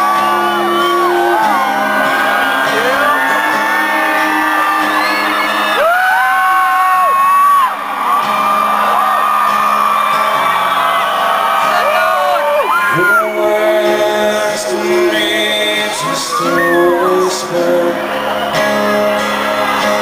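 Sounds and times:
audience whooping and yelling: 0:00.0 - 0:14.5, 0:15.1 - 0:20.0
acoustic guitar: 0:00.0 - 0:20.0
woman and man singing: 0:12.8 - 0:18.1.

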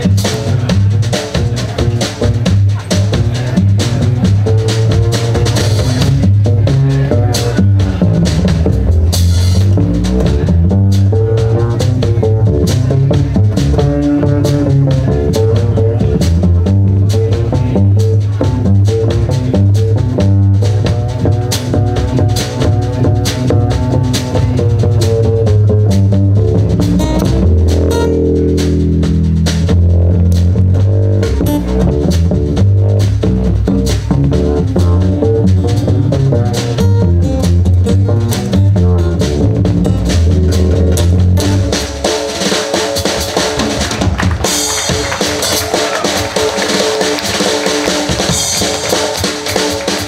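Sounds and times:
drum kit: 0:00.0 - 0:50.0
upright double bass: 0:00.0 - 0:50.0.

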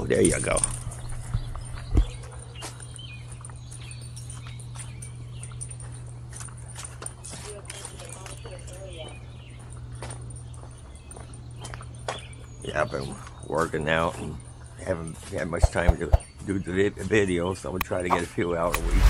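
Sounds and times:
footsteps: 0:15.1 - 0:16.6.

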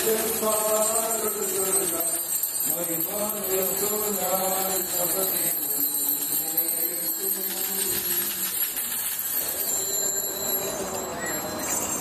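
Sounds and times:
liturgical chanting: 0:00.0 - 0:12.0
small bells jingling: 0:00.0 - 0:12.0.

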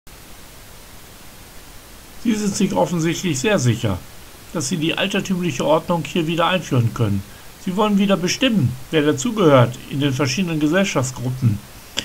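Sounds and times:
steady background hiss: 0:00.1 - 0:12.0
faint low rumble: 0:00.2 - 0:12.0.

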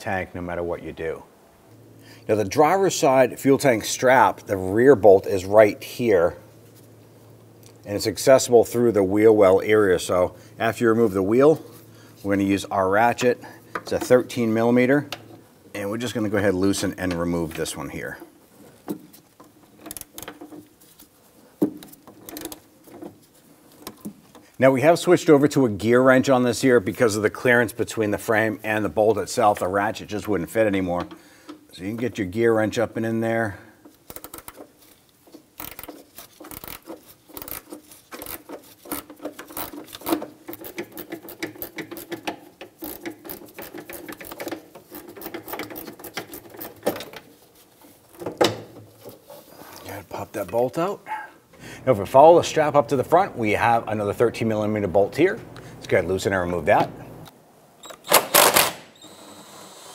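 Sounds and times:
ratchet pawl clicks: 0:34.1 - 0:34.6, 0:42.8 - 0:46.5
ratchet wrench clicking: 0:35.6 - 0:46.5.

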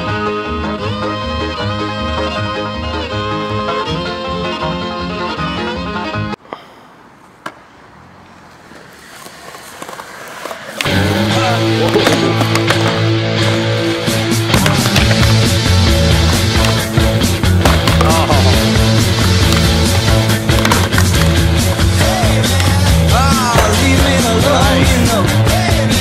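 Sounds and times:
music: 0:00.0 - 0:06.4, 0:10.8 - 0:26.0
skateboard wheels rolling: 0:07.2 - 0:26.0
skateboard clacks: 0:07.4 - 0:26.0
music with strong beat: 0:13.9 - 0:26.0.

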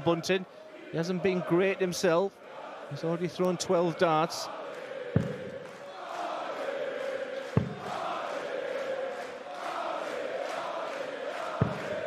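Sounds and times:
arena crowd chanting: 0:00.0 - 0:12.0.

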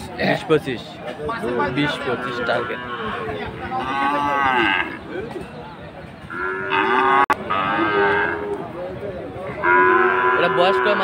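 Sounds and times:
cattle mooing: 0:01.6 - 0:05.0, 0:06.3 - 0:08.7, 0:09.5 - 0:11.0.

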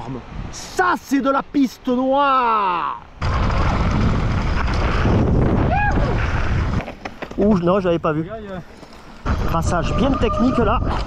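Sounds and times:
wind buffeting microphone: 0:03.2 - 0:08.5, 0:09.2 - 0:11.0.

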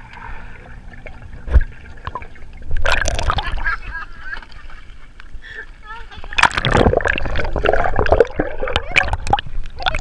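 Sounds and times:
sloshing and gurgling water: 0:00.0 - 0:10.0.

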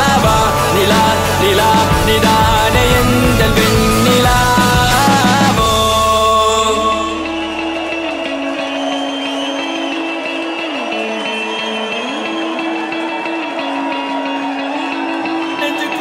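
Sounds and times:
deep bass: 0:00.0 - 0:08.2.

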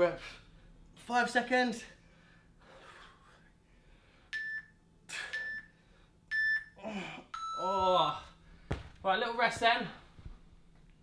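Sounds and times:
man breathing hard: 0:02.0 - 0:04.3
phone timer beeping: 0:04.3 - 0:05.7, 0:06.3 - 0:07.7
man exclaiming: 0:06.9 - 0:08.3.

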